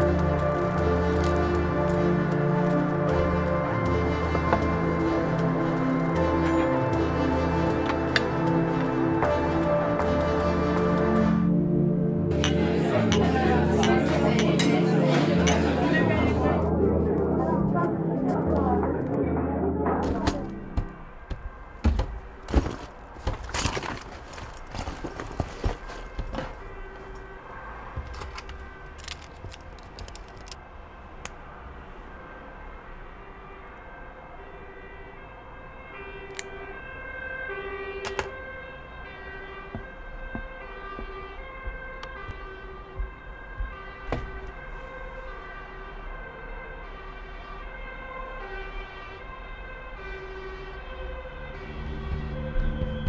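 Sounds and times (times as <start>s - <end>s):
two-tone emergency siren: 19.9s - 53.0s.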